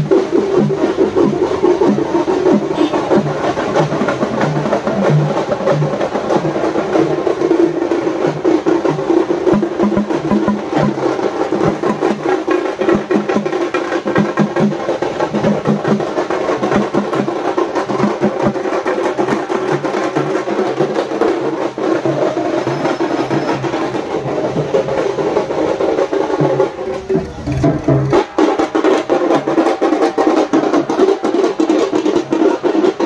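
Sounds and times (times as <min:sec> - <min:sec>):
frame drums and barrel drum beating: 0:00.0 - 0:33.0.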